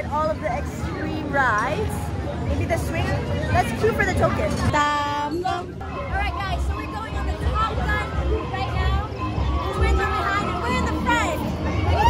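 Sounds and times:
crowd chatter: 0.0s - 12.0s
women talking and exclaiming: 0.0s - 12.0s.

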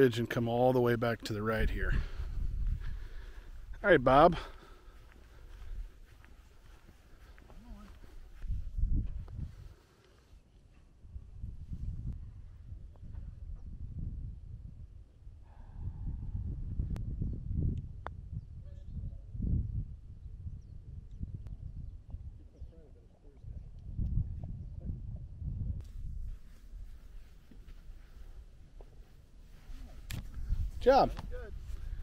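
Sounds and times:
wind buffeting microphone: 1.6s - 9.7s, 11.0s - 32.0s.

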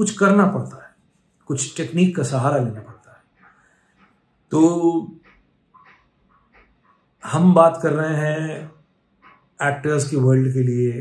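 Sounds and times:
man speaking: 0.0s - 0.9s, 1.5s - 3.2s, 4.5s - 5.2s, 7.2s - 8.7s, 9.6s - 11.0s.

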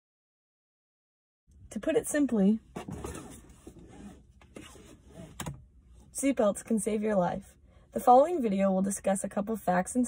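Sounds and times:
seatbelt webbing sliding: 2.7s - 6.1s.

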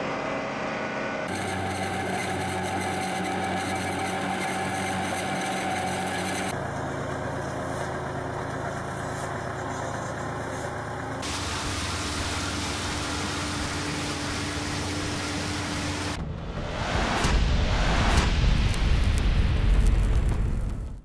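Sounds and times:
tractor engines running: 0.0s - 16.4s
steady whine: 0.0s - 21.0s.

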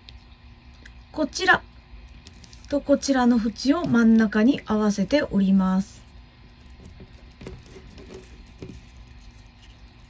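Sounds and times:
paper crinkling and tapping: 6.6s - 10.0s.

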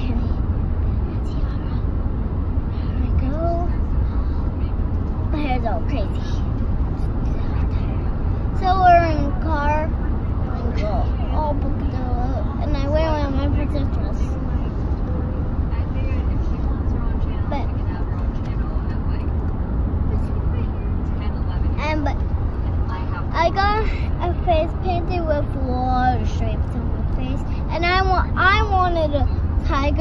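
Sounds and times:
car cabin rumble: 0.0s - 30.0s
child's voice: 2.7s - 3.9s, 5.3s - 6.5s, 8.5s - 14.4s, 21.7s - 30.0s.

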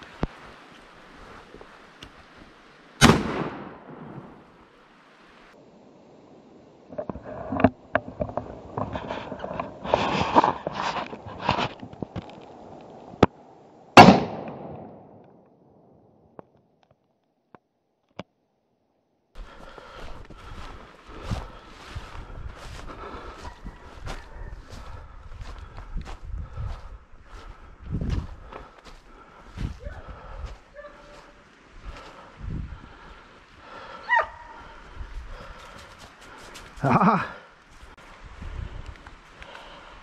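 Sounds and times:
rustling in undergrowth: 0.0s - 3.0s, 6.8s - 13.2s, 19.4s - 40.0s
shotgun shot with echo: 3.0s - 4.1s, 14.0s - 15.0s.

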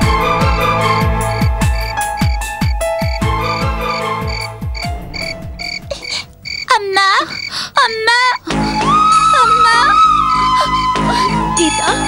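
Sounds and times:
background film score: 0.0s - 12.0s
frogs croaking: 0.7s - 8.5s
low falling drum hits: 4.5s - 6.4s.

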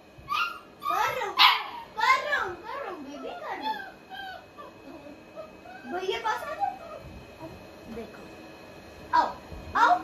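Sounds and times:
puppy whining and yapping: 0.2s - 2.0s, 3.0s - 7.2s.

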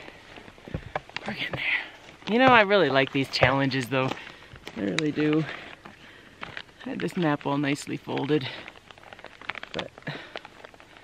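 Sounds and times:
paper map rustling and crinkling: 0.0s - 11.0s.

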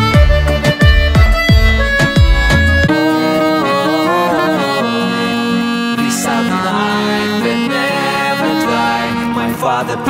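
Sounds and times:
button accordion melody: 0.0s - 10.0s.

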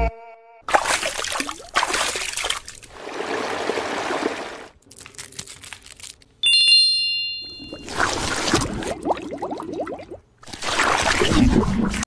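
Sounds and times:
bright bell-like ding: 6.4s - 7.8s.

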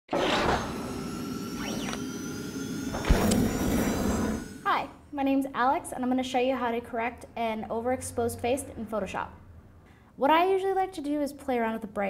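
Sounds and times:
whoosh: 0.1s - 4.7s
sweeping tones: 0.2s - 5.0s
deep hit: 2.9s - 4.6s.

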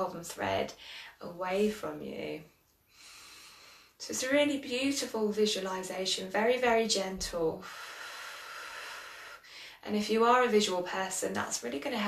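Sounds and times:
woman speaking: 0.0s - 2.5s, 4.0s - 7.6s, 9.8s - 12.0s
woman breathing: 0.7s - 1.2s, 2.8s - 4.0s, 7.6s - 9.8s.

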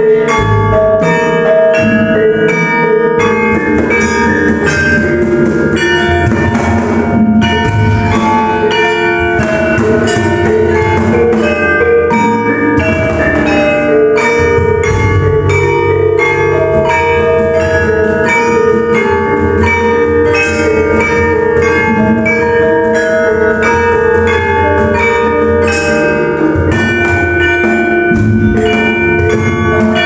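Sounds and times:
deep ringing hanging gongs: 0.0s - 30.0s
metallophones struck with mallets: 0.0s - 30.0s.

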